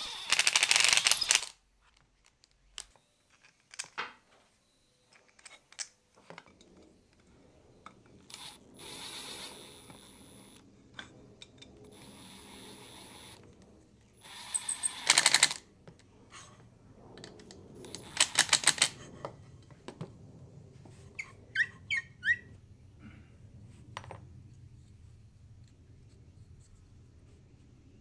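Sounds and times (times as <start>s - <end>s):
impact driver motor whirring: 0.0s - 1.5s.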